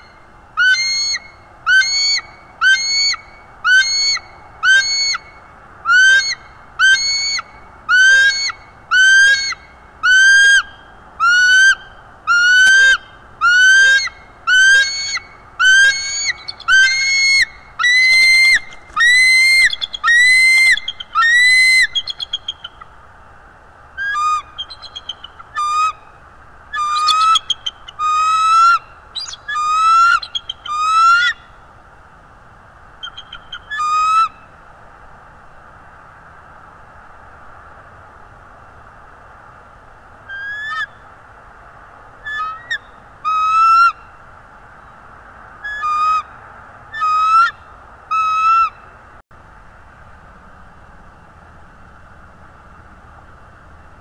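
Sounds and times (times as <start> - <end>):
eagle whistled calls: 0.0 - 22.9, 24.0 - 26.1, 26.7 - 31.5, 33.0 - 34.5.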